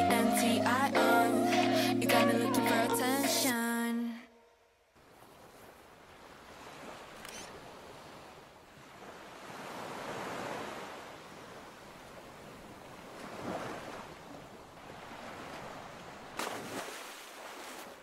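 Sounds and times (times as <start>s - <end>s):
ocean waves washing in and out: 5.0s - 18.0s.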